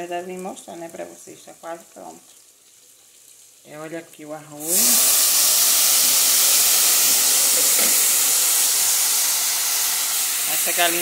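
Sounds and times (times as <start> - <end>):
rice sizzling in a pot: 0.0 - 11.0.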